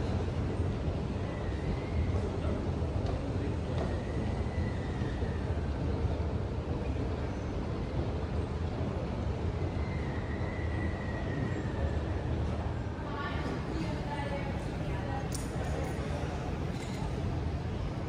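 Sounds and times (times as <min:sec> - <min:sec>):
escalator low rumble: 0:05.1 - 0:18.0.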